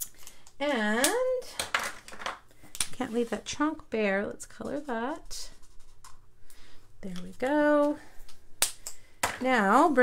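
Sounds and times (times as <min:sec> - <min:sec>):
woman speaking: 0:00.6 - 0:01.6, 0:03.0 - 0:05.6, 0:07.0 - 0:08.1, 0:09.3 - 0:10.0.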